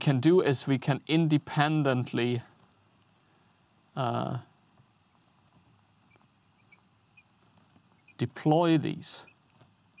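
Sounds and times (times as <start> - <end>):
marker pen squeaking on glass: 6.0 - 7.3, 7.9 - 8.2.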